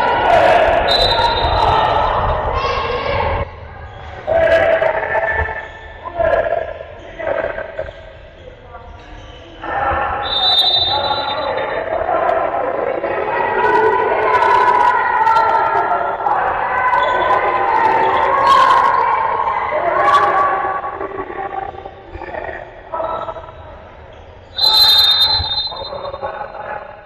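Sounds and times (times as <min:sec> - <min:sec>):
people shouting: 0:00.0 - 0:03.5.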